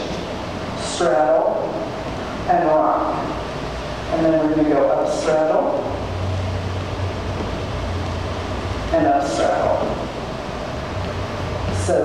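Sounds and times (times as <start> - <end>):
room noise hiss: 0.0 - 12.0
steady low hum: 0.0 - 12.0.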